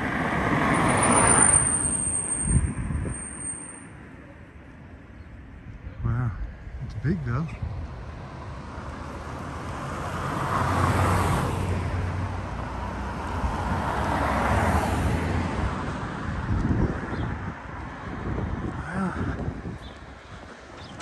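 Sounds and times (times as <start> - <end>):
cars passing by: 0.0 - 21.0.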